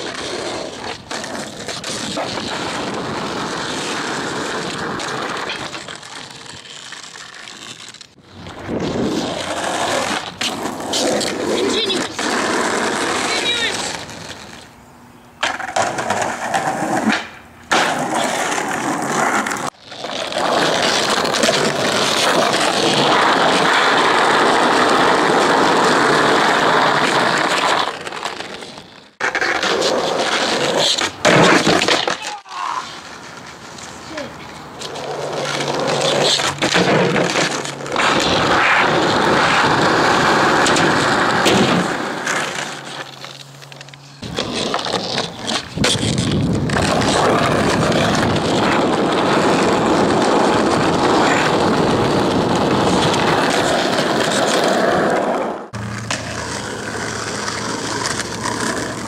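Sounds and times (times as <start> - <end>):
skateboard wheels rolling: 0.0 - 59.0
skateboard pops and landings: 15.4 - 19.7, 29.2 - 33.6, 34.8 - 59.0
person shouting: 32.2 - 32.9.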